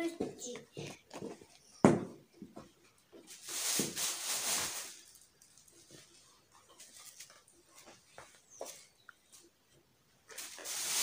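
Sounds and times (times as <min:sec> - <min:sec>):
cloth and plastic rustling: 0:03.2 - 0:08.9, 0:10.3 - 0:11.0.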